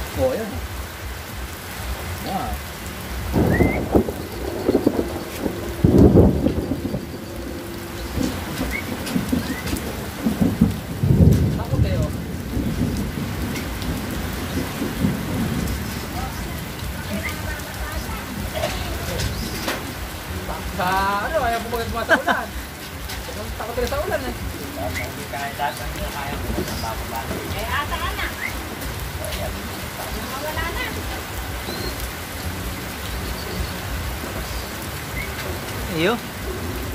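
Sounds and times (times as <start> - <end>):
low rumbles: 0.0 - 36.9
steady rain: 0.0 - 36.9
rising calls: 2.2 - 10.4, 27.8 - 35.5.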